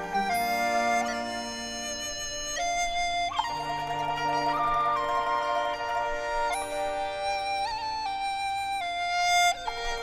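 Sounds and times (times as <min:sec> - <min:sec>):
bamboo flute playing slow melody: 0:00.0 - 0:10.0
traditional ensemble with bowed strings: 0:00.0 - 0:10.0.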